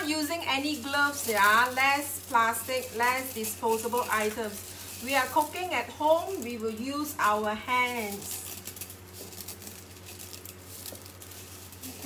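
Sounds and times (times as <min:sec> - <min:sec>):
cereal crunching in a glass bowl: 0:00.0 - 0:12.0
steady low hum: 0:00.0 - 0:12.0.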